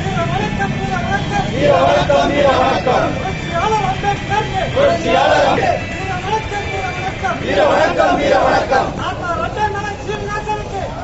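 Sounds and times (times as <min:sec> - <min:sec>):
men chanting in rhythm: 0:00.6 - 0:03.3, 0:04.7 - 0:05.9, 0:07.4 - 0:09.0.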